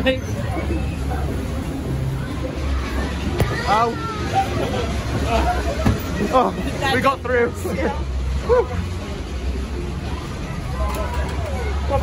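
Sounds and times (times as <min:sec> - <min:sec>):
faint voices: 0:00.0 - 0:12.0
fairground din: 0:00.0 - 0:12.0.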